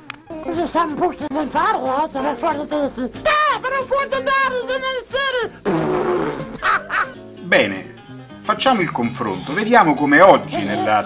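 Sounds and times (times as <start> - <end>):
blown raspberry sound: 5.6 - 7.2
cartoon gibberish voice: 10.5 - 11.0.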